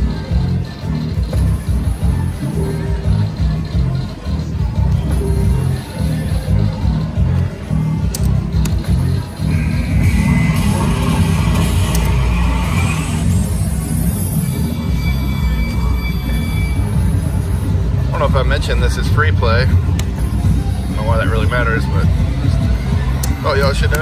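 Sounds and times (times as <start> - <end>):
casino music with pulsing bass: 0.0 - 24.0
slot machine reel-spin sounds: 8.6 - 18.8
steady held electronic tones: 9.4 - 17.8.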